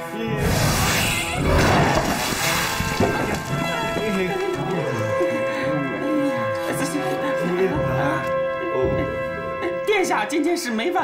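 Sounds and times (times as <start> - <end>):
dramatic background music: 0.0 - 11.0.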